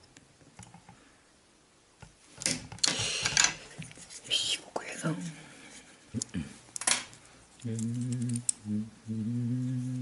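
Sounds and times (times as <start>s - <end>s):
man humming low: 7.6s - 10.0s.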